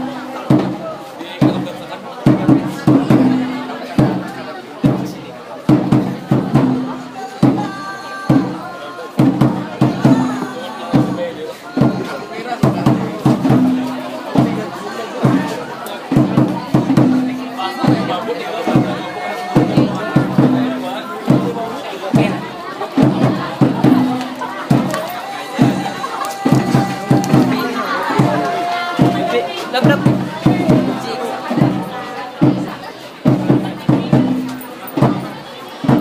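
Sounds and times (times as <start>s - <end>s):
audience chatter: 0.0s - 36.0s
steady drum beat: 0.0s - 36.0s.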